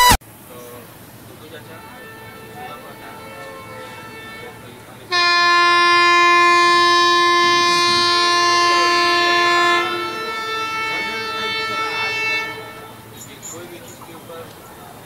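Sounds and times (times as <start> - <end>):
locomotive air horn blast: 1.4 - 14.4
quieter horn of different pitch: 1.6 - 13.4.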